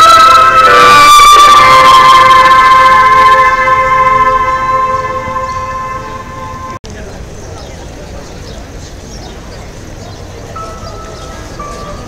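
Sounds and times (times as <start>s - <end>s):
held musical note: 0.0s - 6.8s.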